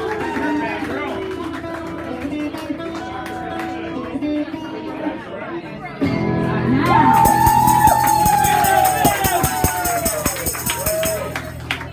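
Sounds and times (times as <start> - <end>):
strummed guitar: 0.0 - 11.9.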